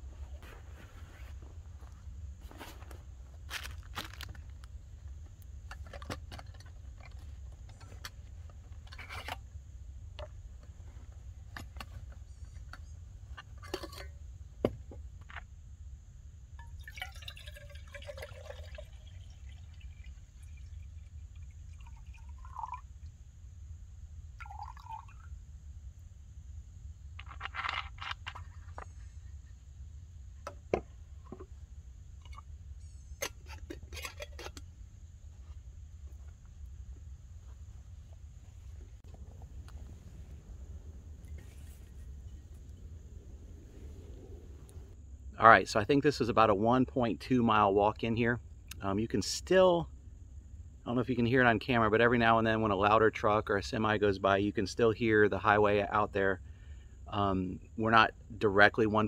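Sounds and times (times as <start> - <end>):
clicks and rustles of gear: 0.4 - 9.5, 27.2 - 29.1
water pouring into metal cup: 16.6 - 23.0, 24.4 - 25.3.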